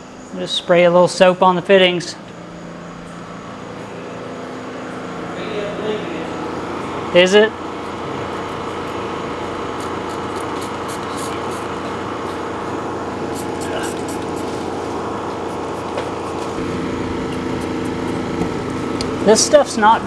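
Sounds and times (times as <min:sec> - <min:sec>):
machine humming: 0:00.0 - 0:20.0
spray bottle hissing: 0:09.8 - 0:11.7, 0:13.3 - 0:14.6.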